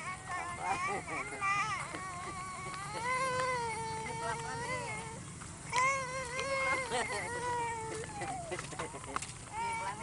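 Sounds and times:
toddler whining cry: 0:00.0 - 0:10.0.

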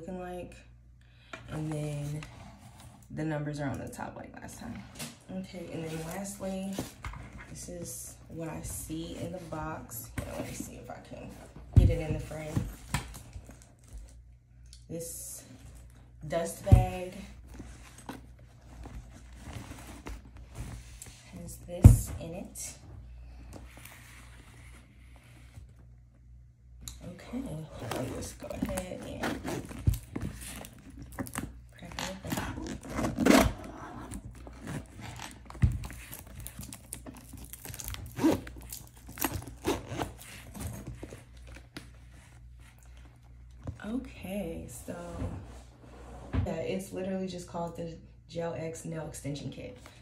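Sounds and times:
case being unzipped: 0:27.6 - 0:41.8.

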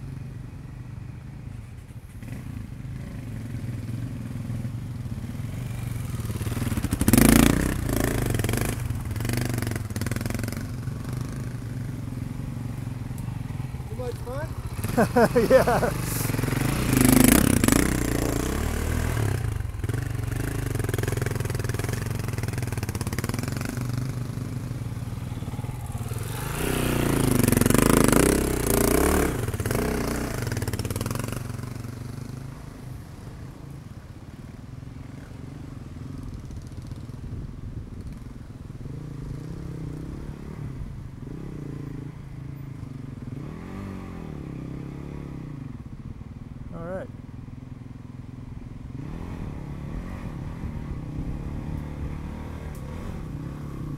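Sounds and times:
dirt bike engines revving: 0:02.2 - 0:32.2.

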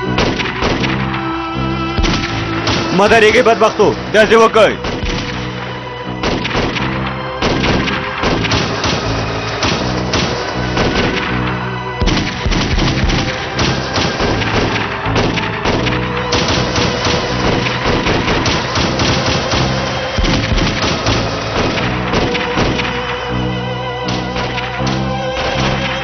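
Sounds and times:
dramatic background music: 0:00.0 - 0:26.0
rapid rifle gunfire: 0:00.1 - 0:01.2, 0:02.0 - 0:03.7, 0:04.8 - 0:23.3.

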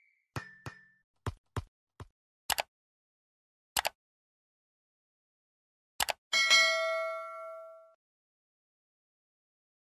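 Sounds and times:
click sound effects: 0:02.5 - 0:02.7, 0:06.0 - 0:06.2
notification bell ding: 0:06.4 - 0:08.0.

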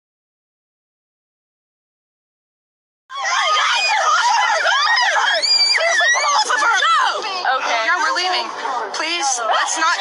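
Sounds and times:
young female voices screaming: 0:03.1 - 0:07.2.

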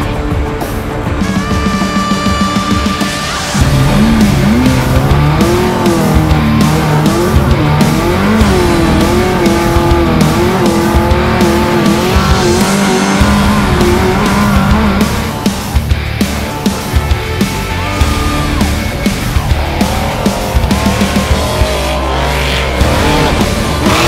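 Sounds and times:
background music: 0:00.0 - 0:24.0
truck engine revving hard: 0:03.5 - 0:24.0.

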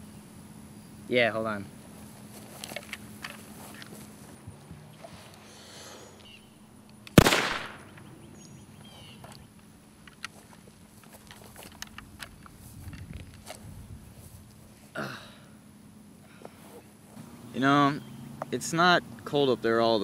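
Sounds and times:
rifle gunshot: 0:07.2 - 0:08.1.

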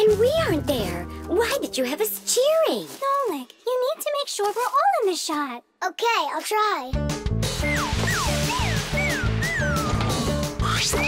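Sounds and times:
upbeat background music: 0:00.0 - 0:02.8, 0:06.9 - 0:11.0.

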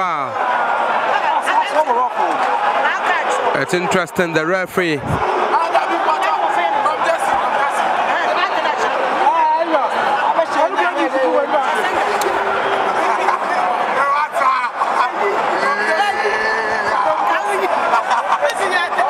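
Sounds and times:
stadium crowd babble: 0:00.0 - 0:19.0.

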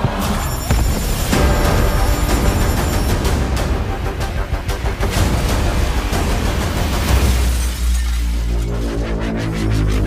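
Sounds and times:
cinematic trailer music with bass: 0:00.0 - 0:10.0.

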